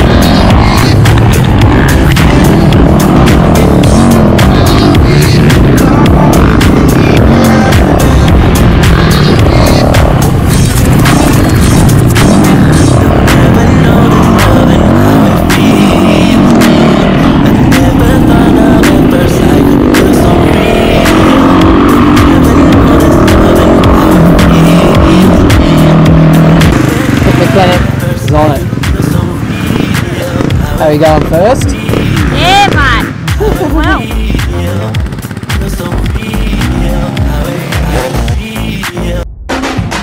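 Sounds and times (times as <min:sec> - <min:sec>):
dirt bike engine revving: 0:00.0 - 0:39.2
music: 0:00.0 - 0:40.0.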